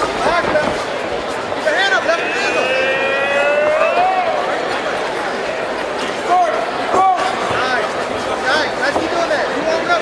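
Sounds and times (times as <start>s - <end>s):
spectator long drawn-out yell: 1.6s - 5.7s
crowd shouting: 1.7s - 5.7s.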